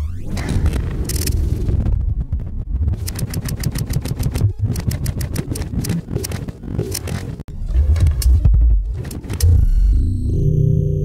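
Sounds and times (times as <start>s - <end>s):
deep electronic rumble: 0.0s - 6.9s, 7.5s - 11.0s
rapid even clicking pulse: 0.7s - 7.4s.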